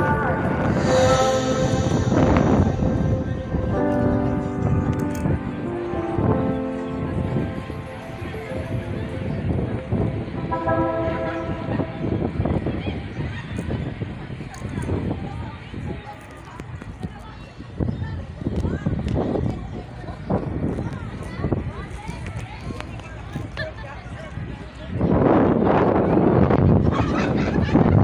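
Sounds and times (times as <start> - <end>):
horn blast: 0.0 - 6.1, 10.2 - 13.0
indistinct voices: 0.0 - 15.0
wind rumble on microphone: 0.0 - 28.0.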